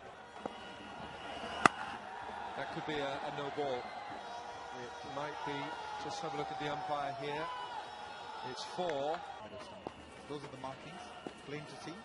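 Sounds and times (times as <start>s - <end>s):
cricket bat striking ball: 1.6s - 2.0s.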